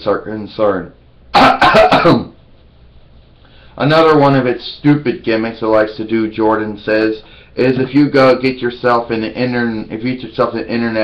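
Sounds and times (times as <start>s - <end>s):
man coughing: 1.3s - 2.4s.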